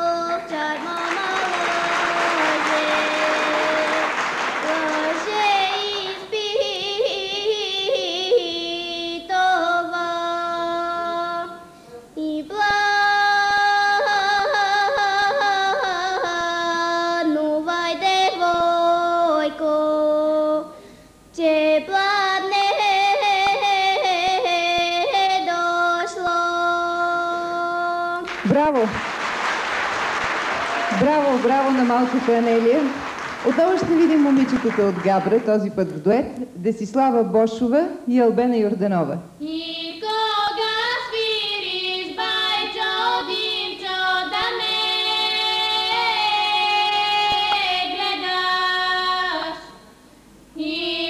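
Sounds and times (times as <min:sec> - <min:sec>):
girl singing folk song: 0:00.0 - 0:28.3, 0:39.3 - 0:49.8, 0:50.5 - 0:51.0
audience applause: 0:00.7 - 0:06.3, 0:28.3 - 0:35.5.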